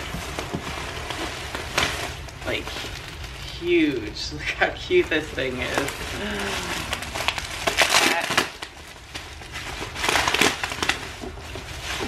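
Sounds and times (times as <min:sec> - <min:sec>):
packaging rustling and crinkling: 0:00.0 - 0:12.0.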